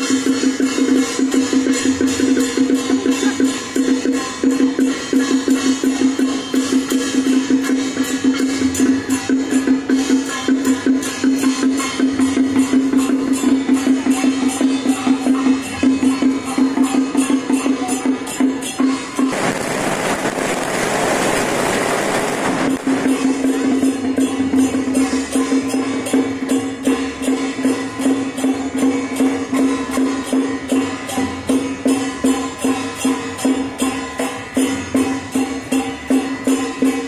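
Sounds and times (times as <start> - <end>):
procession music with percussion: 0.0 - 37.0
dense hissing rush: 19.3 - 23.8.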